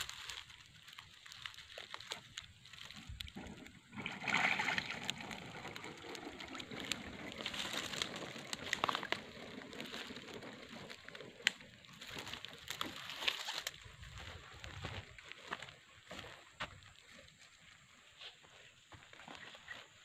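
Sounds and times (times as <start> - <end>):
trap dragged through dry fronds: 0.0 - 14.3
water splashing and sloshing: 0.1 - 13.7.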